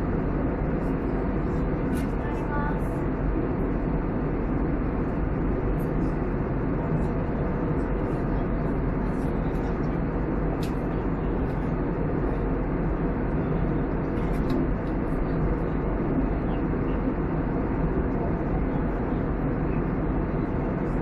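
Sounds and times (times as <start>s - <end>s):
airliner cabin rushing noise: 0.8s - 3.0s.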